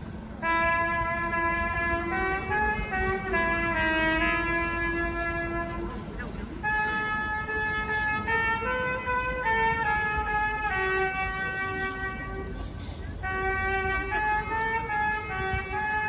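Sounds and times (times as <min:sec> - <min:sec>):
trumpets playing slow tune: 0:00.4 - 0:05.8, 0:06.6 - 0:16.0.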